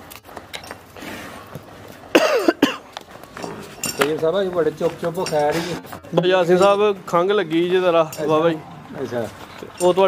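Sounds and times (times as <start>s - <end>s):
loud coughs: 2.1s - 2.9s.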